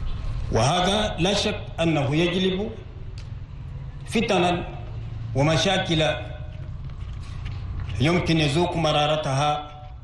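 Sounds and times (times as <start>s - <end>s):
man speaking over sound system: 0.5s - 2.8s, 4.1s - 6.5s, 7.9s - 9.9s.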